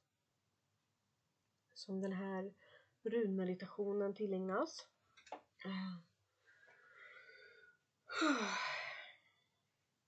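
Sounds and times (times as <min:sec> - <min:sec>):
woman sighing: 0:08.1 - 0:09.2.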